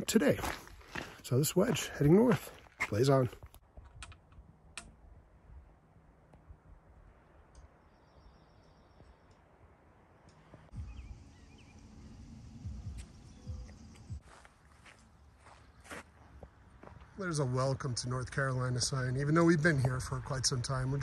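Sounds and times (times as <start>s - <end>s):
faint footsteps: 0.0s - 3.6s, 12.8s - 17.2s.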